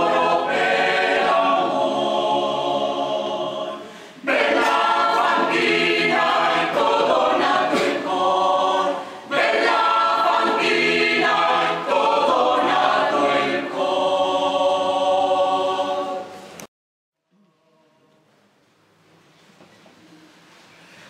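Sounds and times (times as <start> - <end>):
mixed choir singing a cappella: 0.0 - 16.6.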